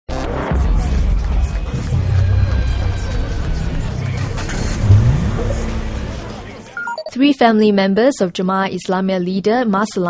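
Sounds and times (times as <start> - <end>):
vehicle engine: 2.7 - 6.9
low rumble: 3.0 - 6.8.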